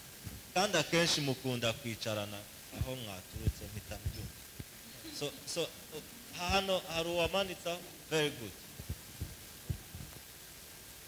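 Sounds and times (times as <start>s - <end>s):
room tone hiss: 0.0s - 11.0s
soft low thumps: 2.8s - 4.7s, 8.8s - 10.2s.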